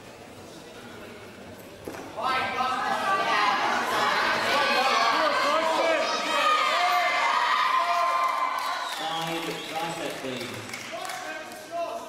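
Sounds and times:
audience shouting and cheering: 2.4 - 9.5.

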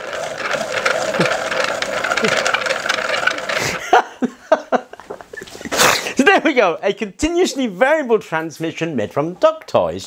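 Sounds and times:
whirring rattle of fine clicks: 0.0 - 4.0
man laughing: 2.2 - 2.6, 3.5 - 6.5.

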